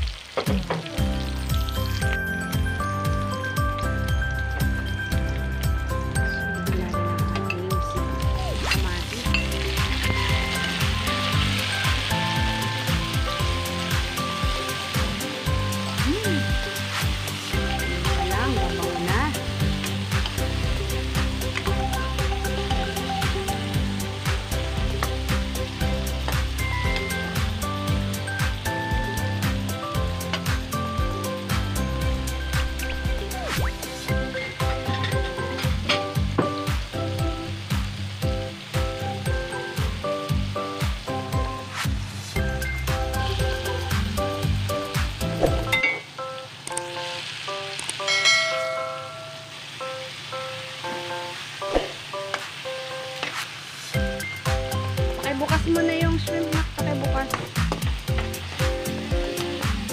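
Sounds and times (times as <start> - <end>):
food sizzling in a wok: 0.0 - 59.9
background music: 0.1 - 59.9.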